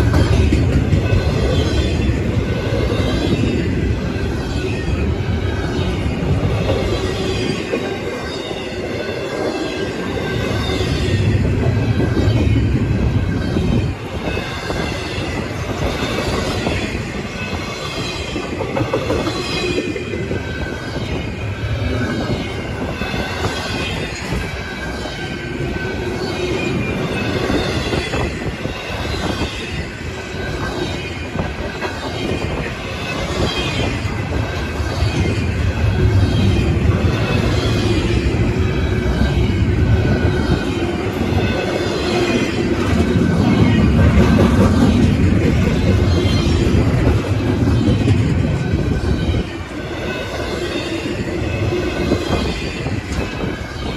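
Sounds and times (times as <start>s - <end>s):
steel wheels rumbling on rail: 0.0s - 53.9s.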